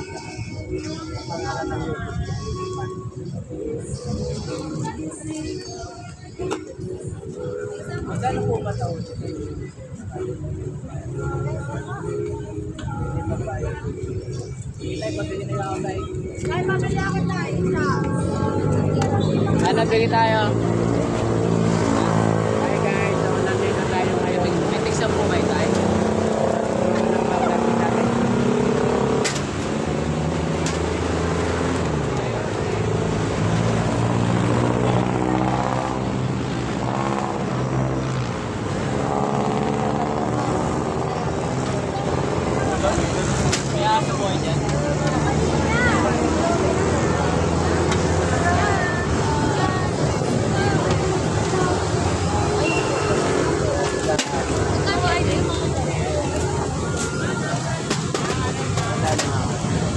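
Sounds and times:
people talking: 0.0s - 59.9s.

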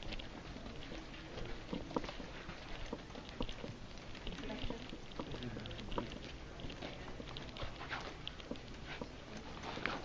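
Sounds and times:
footsteps: 0.0s - 10.0s.

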